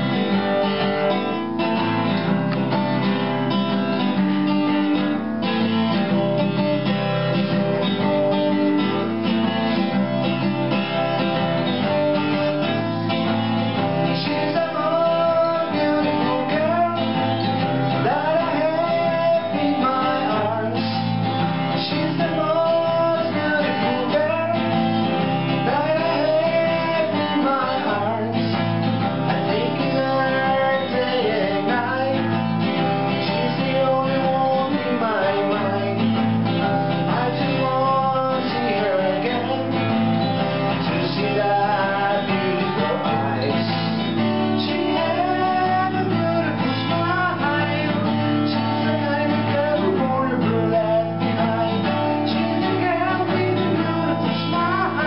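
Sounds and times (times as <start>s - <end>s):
acoustic guitars strumming: 0.0s - 55.0s
man singing: 11.6s - 55.0s.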